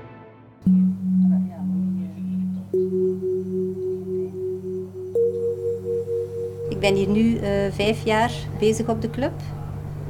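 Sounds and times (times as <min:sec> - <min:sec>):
soft pulsing background music: 0:00.6 - 0:08.6.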